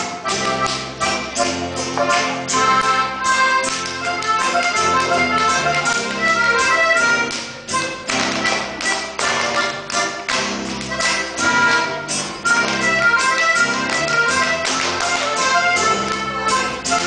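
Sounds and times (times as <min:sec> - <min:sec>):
folk dance band music: 0:00.0 - 0:17.0
dancers slapping and stomping: 0:07.2 - 0:11.3, 0:12.6 - 0:16.3.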